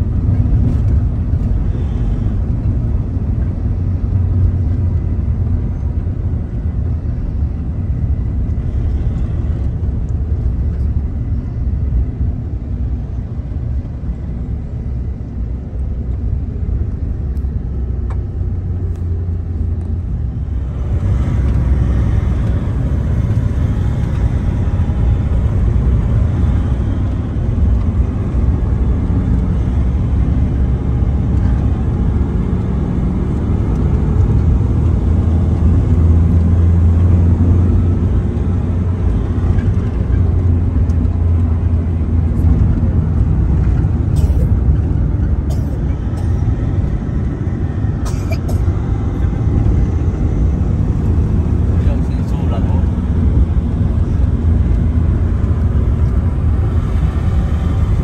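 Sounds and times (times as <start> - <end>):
road and engine noise in van: 0.0 - 58.0.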